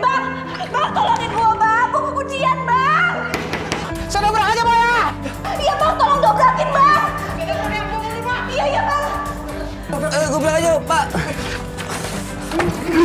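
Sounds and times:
background music with low notes: 0.0 - 13.0.

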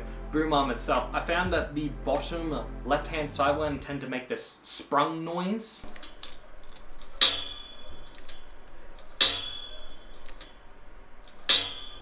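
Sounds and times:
spring twanging: 5.8 - 12.0.

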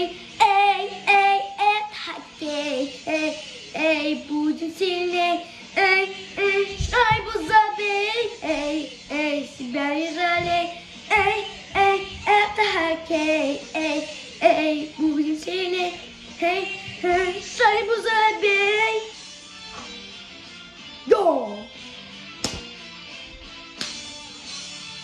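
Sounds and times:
boy singing: 0.0 - 19.1.

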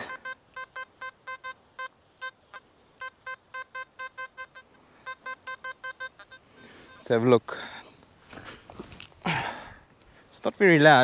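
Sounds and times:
metal detector beeping: 0.0 - 7.2.

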